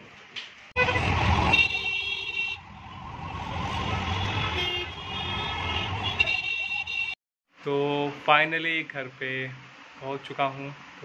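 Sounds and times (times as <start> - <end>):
engine rumble and road noise: 0.0 - 7.2
vehicle horns honking: 0.8 - 2.6, 3.9 - 7.2.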